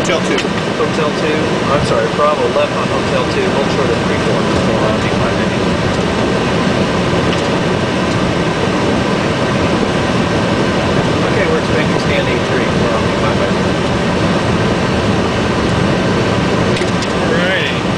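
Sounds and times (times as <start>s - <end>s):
cockpit air conditioning noise: 0.0s - 17.9s
faint steady whine: 0.0s - 17.9s
jet engines idling: 0.0s - 17.9s.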